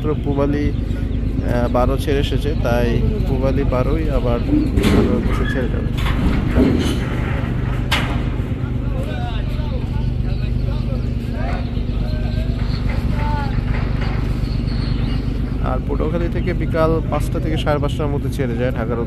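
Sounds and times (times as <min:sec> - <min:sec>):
boat engines running: 0:00.0 - 0:19.0
voices calling: 0:00.0 - 0:19.0.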